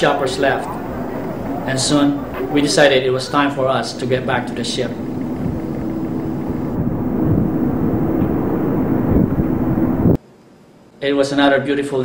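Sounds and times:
faint low hum: 0.0s - 10.2s
outdoor rumble: 0.0s - 10.2s.

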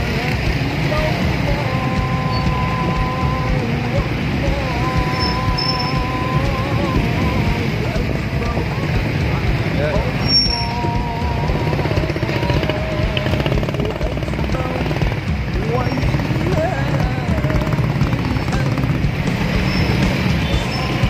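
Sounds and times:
hubbub of voices: 0.0s - 21.0s
motorcycle engines running: 0.0s - 21.0s.

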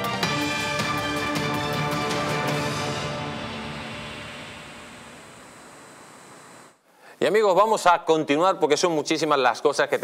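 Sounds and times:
news theme music: 0.0s - 5.5s.

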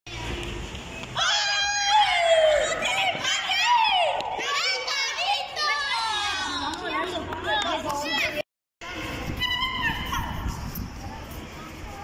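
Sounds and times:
children calling out and squealing: 8.0s - 10.7s.

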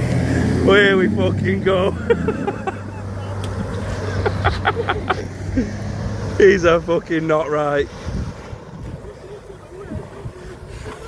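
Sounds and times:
churned water wash: 0.0s - 11.0s
outboard motor droning: 0.0s - 11.0s.

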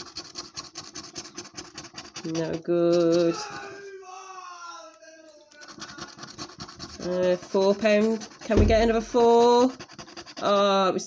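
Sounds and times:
coin scraping scratch card: 0.0s - 3.6s, 5.6s - 10.8s.

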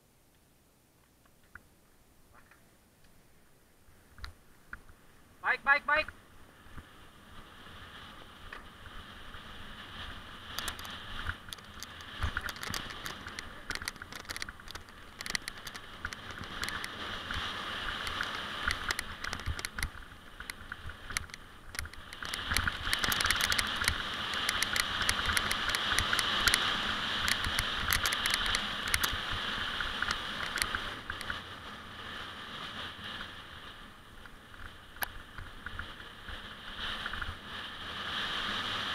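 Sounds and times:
wind rumble on microphone: 4.1s - 38.9s
mountain bike rattling on dirt trail: 6.2s - 38.9s
sharp clicks: 10.5s - 17.4s, 18.0s - 29.2s, 29.9s - 31.4s.

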